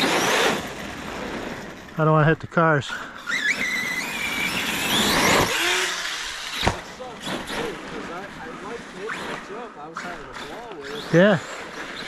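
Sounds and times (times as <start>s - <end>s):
electric motor whining: 0.0s - 1.9s, 3.1s - 12.0s
tyres spinning on ice: 0.0s - 2.4s, 3.2s - 12.0s.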